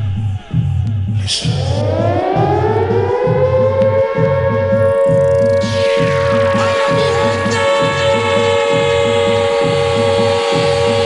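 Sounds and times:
club dance music: 0.0s - 11.0s
siren-like rising sweep: 1.4s - 11.0s.

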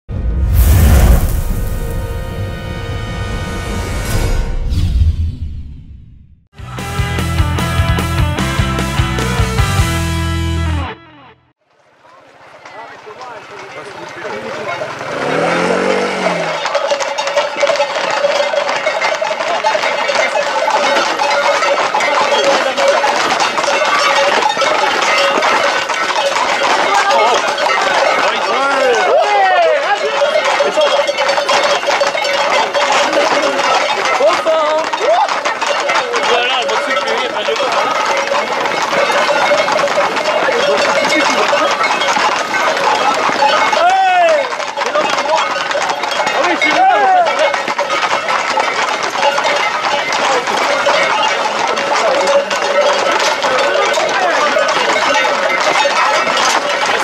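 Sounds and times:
horse hooves clattering on pavement: 6.8s - 10.2s, 11.6s - 57.0s
crowd shouting: 26.8s - 31.2s, 46.5s - 47.4s.

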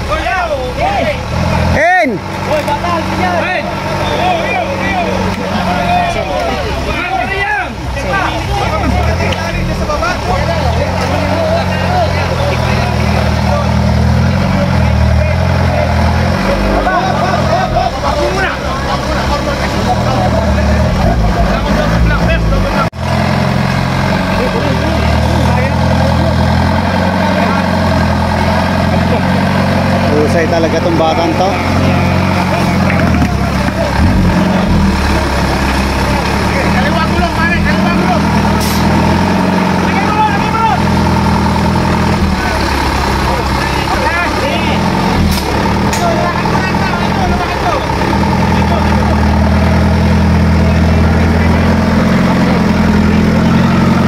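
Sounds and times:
buggy engine revving: 0.0s - 54.0s
spectators' voices: 0.0s - 54.0s.

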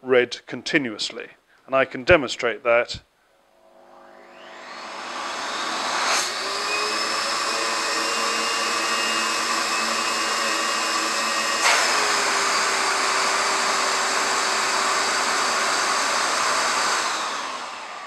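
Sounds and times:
vacuum extractor running: 3.5s - 18.0s.

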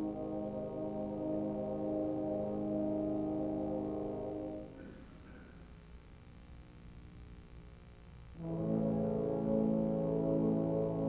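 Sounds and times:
orchestra music: 0.0s - 4.8s, 8.4s - 11.0s
sustained brass chord: 0.0s - 4.9s, 8.4s - 11.0s.

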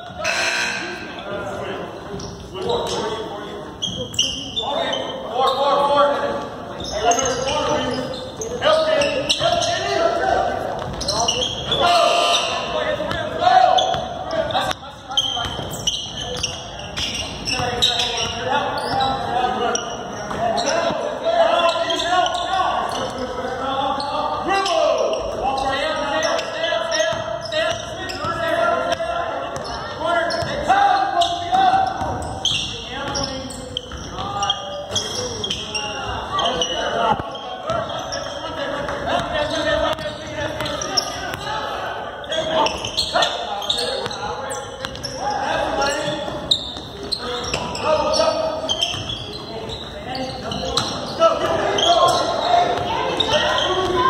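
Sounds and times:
indistinct voices calling out: 0.1s - 1.5s.

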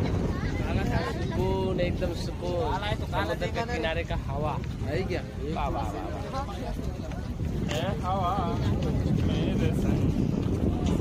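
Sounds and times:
crowd voices: 0.0s - 11.0s
wind buffeting microphone: 0.0s - 11.0s.

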